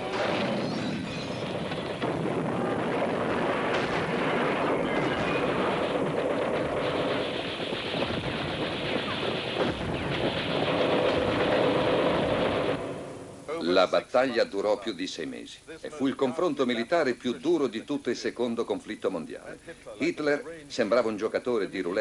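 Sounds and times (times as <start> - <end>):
rattle of gunfire: 0.0 - 13.2
rumbling din: 0.0 - 13.5.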